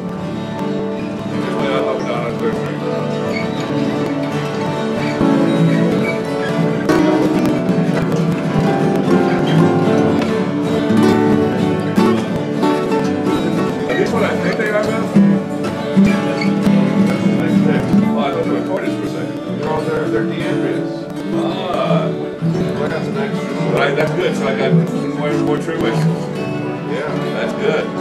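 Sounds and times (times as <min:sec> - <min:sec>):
guitar with ringing open strings: 0:00.0 - 0:28.0.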